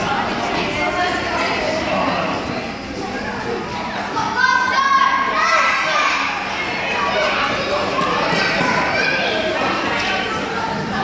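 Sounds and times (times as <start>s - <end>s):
children calling and chattering: 0.0s - 11.0s.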